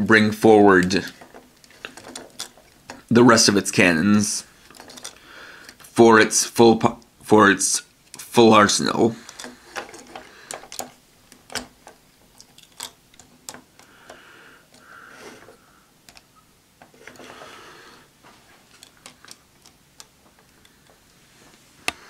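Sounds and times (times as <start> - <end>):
plastic toy parts clicking: 0.8 - 3.1, 4.6 - 5.9, 9.2 - 17.4, 18.7 - 21.1
plastic sliding and rubbing: 16.8 - 22.0.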